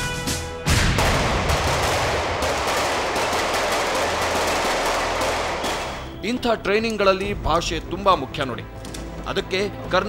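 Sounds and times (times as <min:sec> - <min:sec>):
rapid gunfire: 0:00.8 - 0:06.1.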